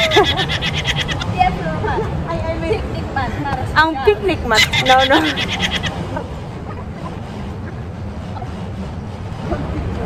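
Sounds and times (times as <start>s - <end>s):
woman laughing: 0.0s - 2.2s, 4.6s - 7.0s
low outdoor background rumble: 0.0s - 10.0s.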